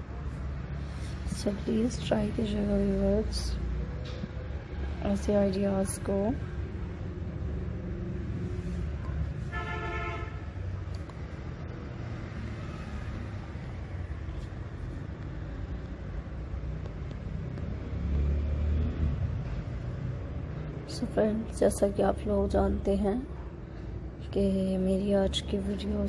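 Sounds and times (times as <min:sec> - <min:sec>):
low rumble of road traffic: 0:00.0 - 0:26.0.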